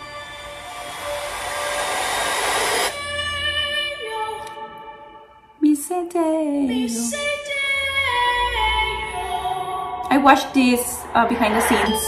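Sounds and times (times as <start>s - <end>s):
rushing swell of noise: 0.0s - 3.1s, 10.0s - 12.0s.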